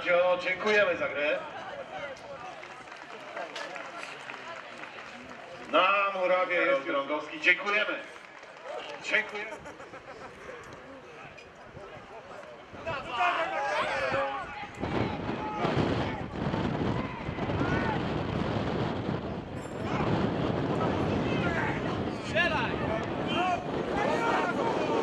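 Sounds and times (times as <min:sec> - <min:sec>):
players shouting: 0:12.8 - 0:18.2, 0:20.8 - 0:25.0
loud steady rushing noise: 0:14.2 - 0:25.0.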